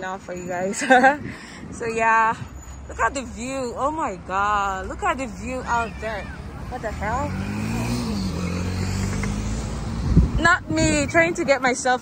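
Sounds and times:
wind noise: 0.0 - 5.7, 6.4 - 12.0
road noise: 0.0 - 12.0
motor vehicle hum: 0.9 - 12.0.

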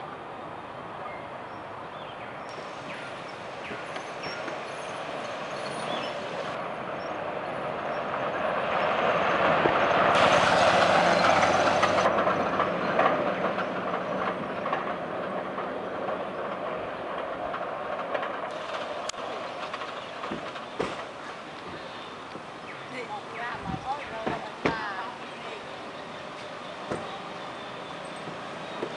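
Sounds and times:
tyres on road: 0.0 - 28.9
jeep engine driving by: 8.7 - 12.9.

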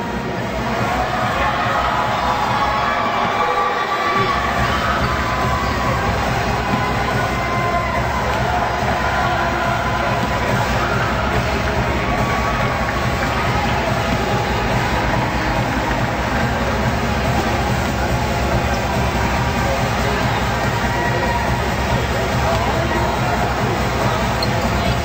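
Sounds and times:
crowd cheering: 0.0 - 25.0
music in an arena: 0.0 - 25.0.

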